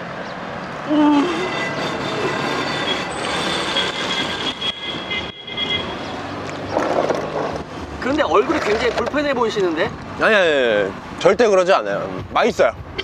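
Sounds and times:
vehicle road noise: 0.0 - 13.0.

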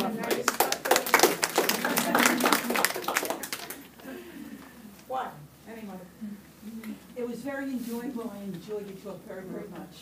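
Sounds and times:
audience applauding: 0.0 - 3.9.

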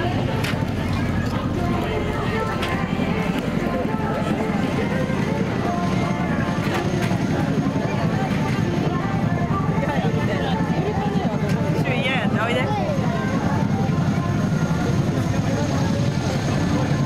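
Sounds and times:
low engine rumble: 0.0 - 17.0
many people talking: 0.0 - 17.0.

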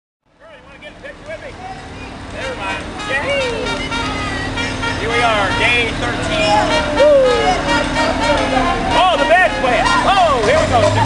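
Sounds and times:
low engine hum: 0.3 - 11.0
people calling and shouting: 0.3 - 11.0
warbling call: 1.6 - 10.1.

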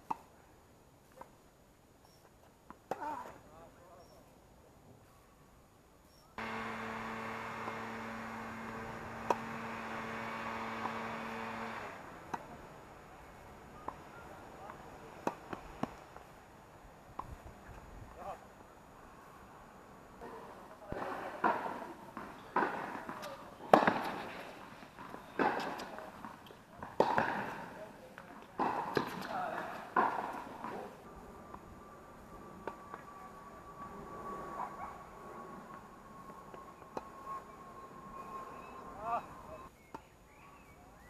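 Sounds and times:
tennis ball struck by rackets: 6.4 - 12.6, 21.4 - 24.5, 25.4 - 27.8, 28.6 - 30.9.

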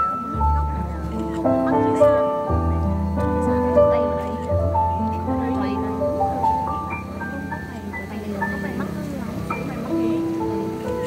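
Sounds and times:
live band playing slow ballad: 0.0 - 11.0.

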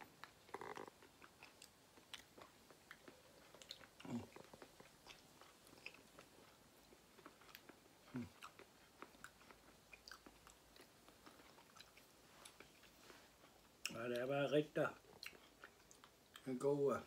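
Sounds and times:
chewing soft fruit: 0.0 - 17.0.

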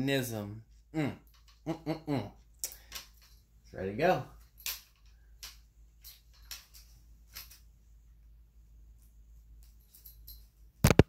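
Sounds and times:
clicks and rustles of handling: 4.4 - 7.8, 8.9 - 11.0.

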